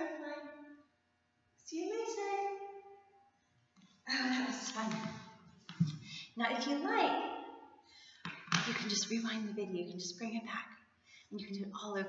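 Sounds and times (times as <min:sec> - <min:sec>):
woman's voice: 0:00.0 - 0:00.4, 0:01.7 - 0:02.6, 0:04.1 - 0:05.2, 0:06.2 - 0:07.2, 0:08.5 - 0:10.7, 0:11.3 - 0:12.0.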